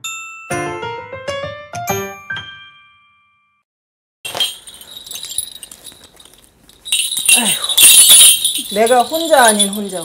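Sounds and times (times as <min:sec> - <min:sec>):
brass bells jingling: 0:04.3 - 0:10.0.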